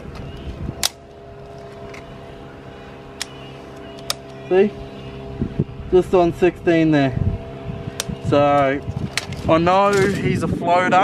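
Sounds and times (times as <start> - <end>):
motor droning: 0.0 - 11.0.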